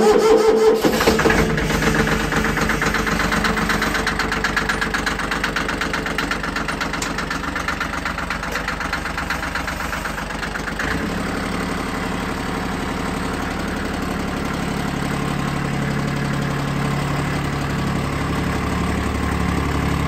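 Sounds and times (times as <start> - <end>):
diesel tractor engine idling: 0.0 - 20.0.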